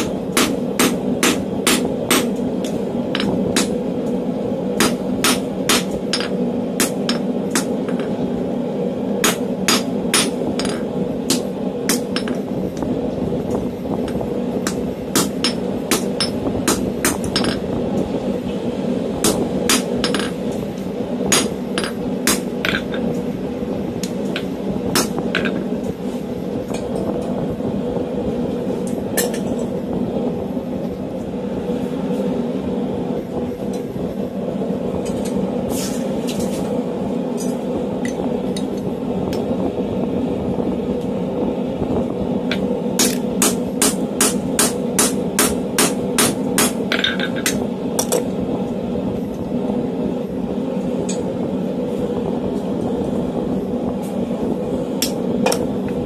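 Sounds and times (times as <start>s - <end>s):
hammer striking steel on anvil: 0.0s - 3.8s, 4.8s - 8.2s, 9.2s - 12.4s, 14.6s - 17.6s, 19.2s - 20.4s, 21.3s - 23.1s, 43.0s - 48.2s
forge blower hum: 0.0s - 56.0s
shop fan: 0.0s - 56.0s.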